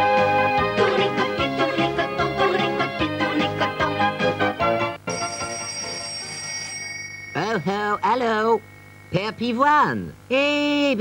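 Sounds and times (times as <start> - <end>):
telephone ringing: 5.0 - 9.7.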